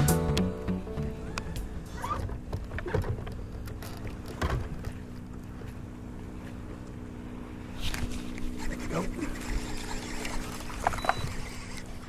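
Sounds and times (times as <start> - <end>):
electric trolling motor humming: 0.0 - 12.0.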